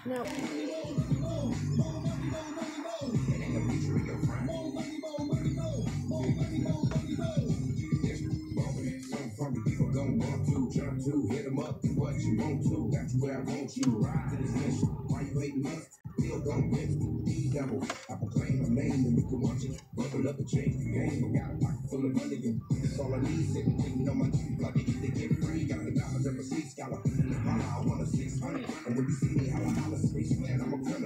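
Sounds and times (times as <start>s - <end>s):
hip hop music from car speakers: 0.0s - 31.0s
rapping: 0.0s - 31.0s
turntable scratching: 0.0s - 31.0s.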